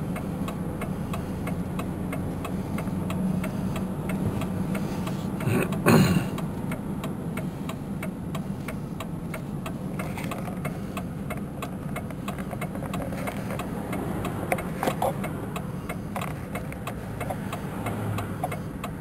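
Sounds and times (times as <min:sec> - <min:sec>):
car engine and tyres drone: 0:00.0 - 0:19.0
rapid ticking: 0:06.4 - 0:19.0.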